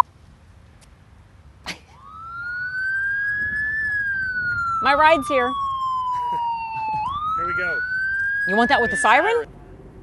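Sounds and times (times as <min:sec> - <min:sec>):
siren wailing: 0:02.0 - 0:09.5.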